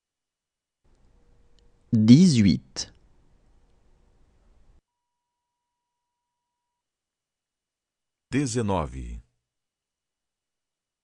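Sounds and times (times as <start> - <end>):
faint steady tone: 2.9 - 7.8.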